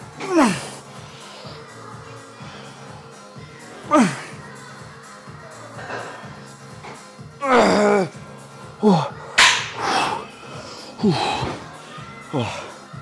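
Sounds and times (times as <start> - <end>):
music: 0.0 - 13.0
man grunting: 0.2 - 0.8, 3.9 - 4.3, 7.4 - 8.2, 8.8 - 9.2, 11.0 - 11.6
sharp slap: 9.4 - 9.8.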